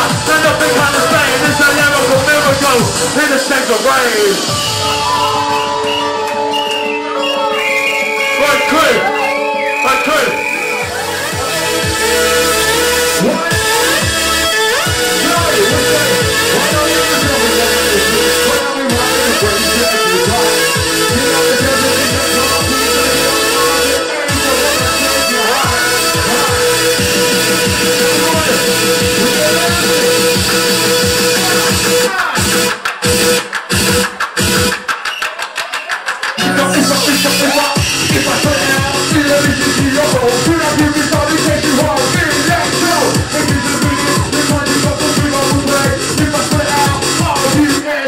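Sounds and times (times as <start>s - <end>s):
hardcore rave dance music: 0.0s - 48.0s
held synth note: 4.5s - 9.6s.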